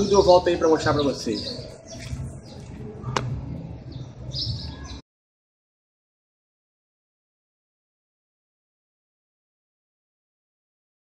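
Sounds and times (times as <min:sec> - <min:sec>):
birds chirping: 0:00.0 - 0:05.0.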